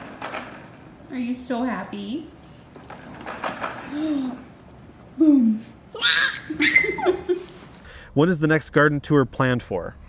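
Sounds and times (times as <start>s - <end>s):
baby shrieking happily: 6.0s - 7.1s.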